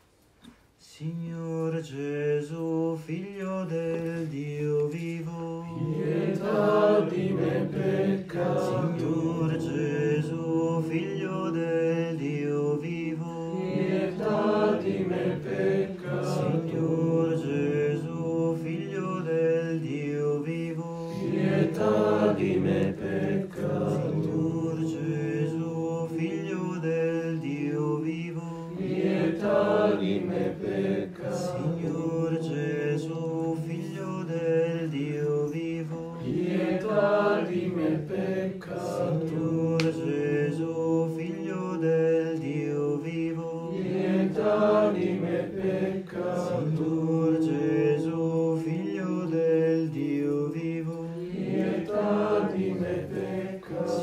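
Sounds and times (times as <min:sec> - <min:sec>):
low voices chanting: 0:05.0 - 0:41.5, 0:42.2 - 0:54.0.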